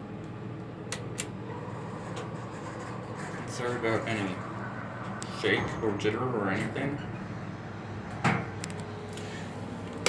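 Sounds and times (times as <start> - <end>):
low elevator hum: 0.0 - 10.0.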